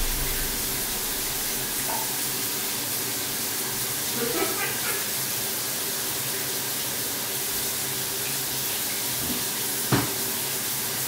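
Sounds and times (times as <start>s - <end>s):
running water hissing: 0.0s - 11.0s.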